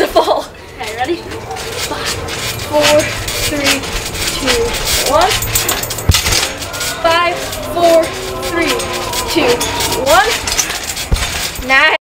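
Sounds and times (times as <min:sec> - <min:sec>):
trampoline springs clinking: 0:00.0 - 0:12.0.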